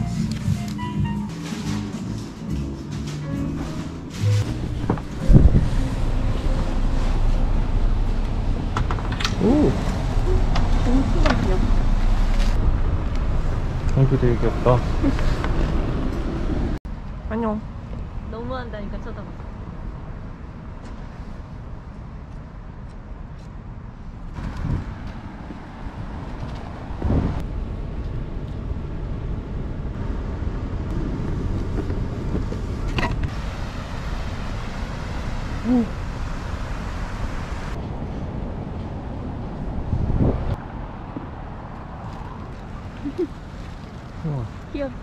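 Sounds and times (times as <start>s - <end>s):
road traffic noise: 0.0s - 45.0s.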